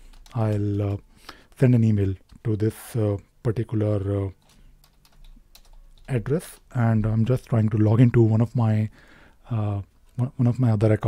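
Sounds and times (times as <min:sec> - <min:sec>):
computer keyboard typing: 0:00.0 - 0:01.0, 0:04.3 - 0:07.4.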